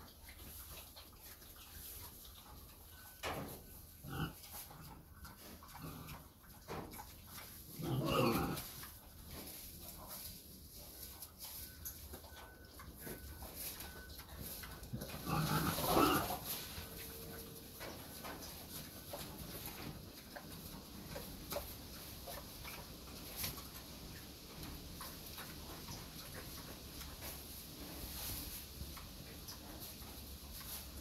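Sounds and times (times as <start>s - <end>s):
pig rooting in dry leaves: 0.0s - 31.0s
pig grunting call: 4.0s - 4.4s, 7.8s - 8.8s, 15.1s - 16.5s.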